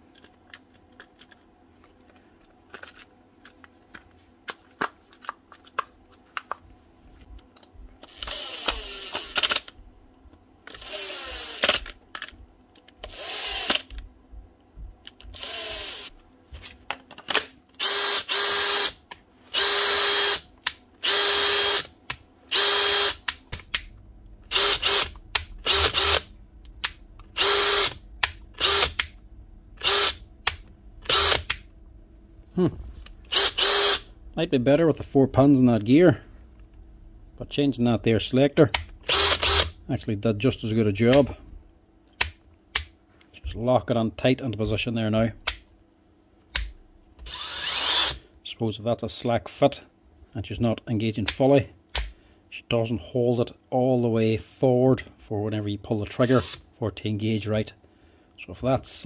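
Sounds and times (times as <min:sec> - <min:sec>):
cordless drill running in bursts: 0:08.1 - 0:09.6, 0:10.8 - 0:11.8, 0:13.1 - 0:13.8, 0:15.3 - 0:16.1, 0:17.8 - 0:20.4, 0:21.0 - 0:21.8, 0:22.5 - 0:23.2, 0:24.5 - 0:26.3, 0:27.4 - 0:28.0, 0:28.6 - 0:29.0, 0:29.8 - 0:30.2, 0:31.1 - 0:31.5, 0:33.3 - 0:34.1, 0:39.1 - 0:39.8, 0:47.3 - 0:48.2.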